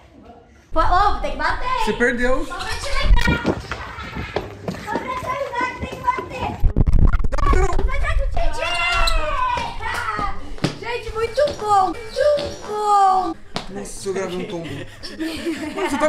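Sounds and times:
excited voices shouting: 7.9s - 13.4s.

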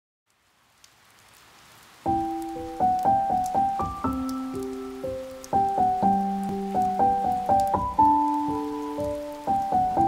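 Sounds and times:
soft crackles: 0.3s - 5.8s
rain-like hiss: 0.3s - 10.0s.

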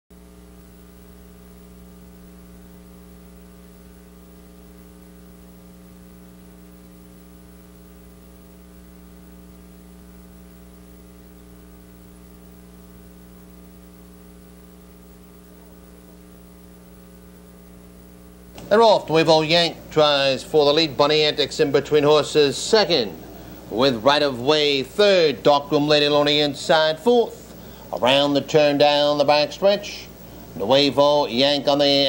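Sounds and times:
electrical mains hum: 0.1s - 32.0s
faint high-pitched whine: 0.2s - 32.0s.

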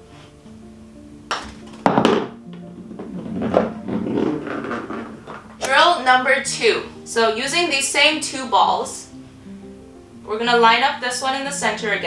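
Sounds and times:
background music: 0.0s - 12.0s
putter striking golf ball: 1.3s - 5.8s.

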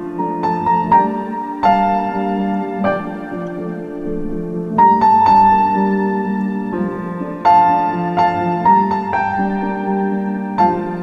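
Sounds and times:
slow solo piano: 0.0s - 11.0s.

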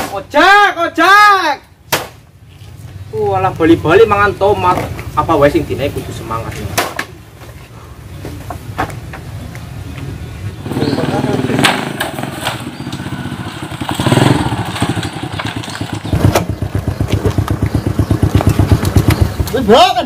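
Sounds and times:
motorcycle engine idling: 10.5s - 20.0s.

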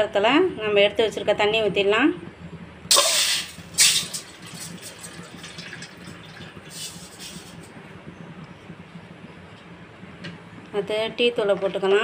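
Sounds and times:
water pouring into a steel bowl: 2.9s - 7.6s.

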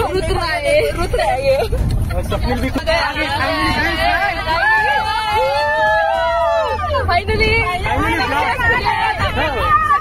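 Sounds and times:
vehicle rumble: 0.0s - 10.0s
people singing and shouting: 2.8s - 10.0s.

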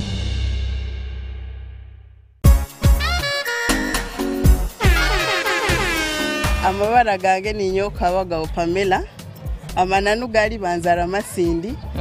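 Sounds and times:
advert music: 2.4s - 7.9s
horn blast sliding down: 4.8s - 6.8s.

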